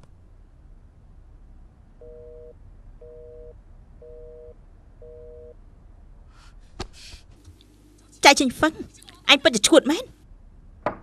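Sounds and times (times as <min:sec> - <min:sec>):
telephone busy tone beeps: 0:02.0 - 0:05.6.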